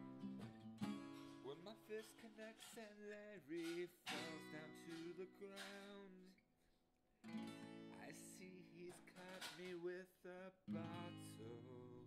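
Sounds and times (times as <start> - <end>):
acoustic guitar chords strummed: 0.0 - 2.9, 3.5 - 6.2, 7.3 - 9.9, 10.7 - 12.0.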